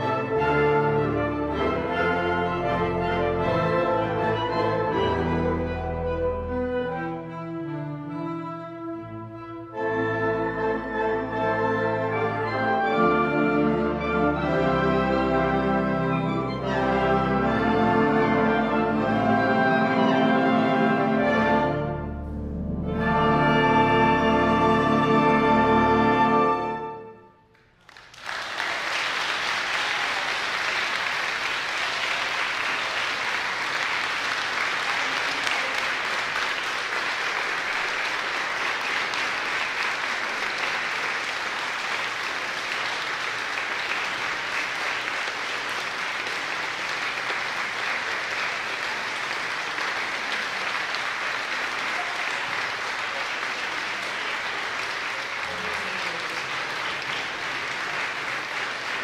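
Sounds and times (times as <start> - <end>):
large audience applauding: 27.5 - 59.0.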